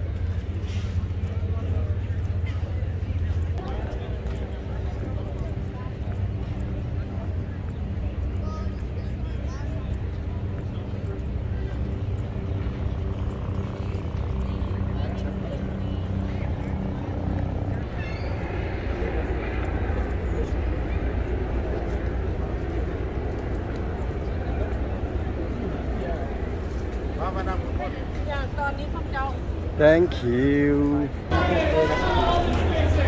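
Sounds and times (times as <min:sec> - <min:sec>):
chatter of many people: 0:00.0 - 0:33.0
low engine hum: 0:00.0 - 0:33.0.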